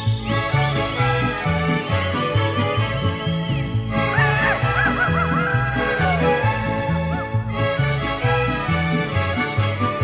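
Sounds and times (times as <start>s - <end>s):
mariachi band playing a ballad: 0.0s - 10.0s.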